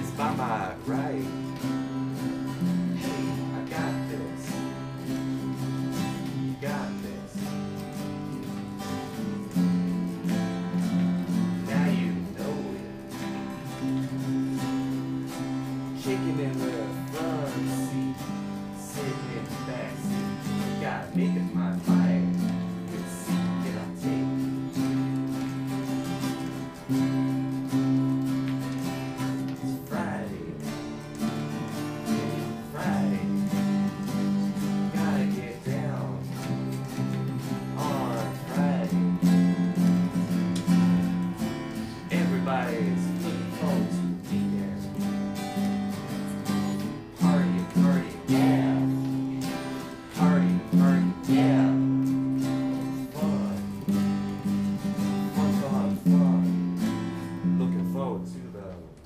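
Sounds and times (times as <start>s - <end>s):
acoustic guitars strumming: 0.0s - 59.0s.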